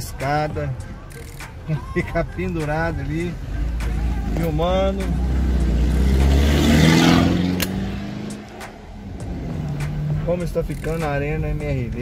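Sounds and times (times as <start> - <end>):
low engine rumble: 1.5 - 12.0
vehicle passing by: 3.4 - 10.4.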